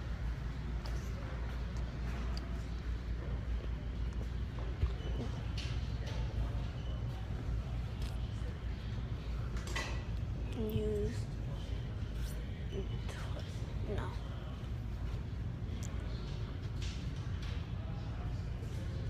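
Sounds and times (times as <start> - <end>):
faint voices: 0.6 - 19.0.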